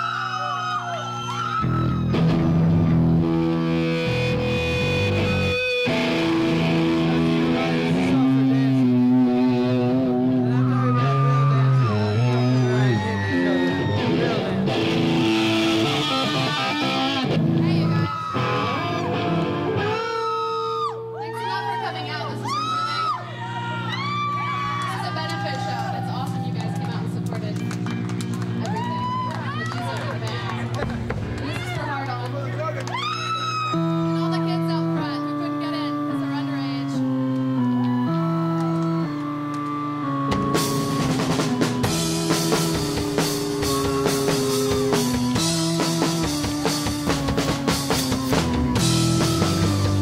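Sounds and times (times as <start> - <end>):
organ chords: 0.0 - 50.0
live rock band playing: 1.2 - 20.7, 33.6 - 50.0
drums and cymbals: 40.3 - 50.0.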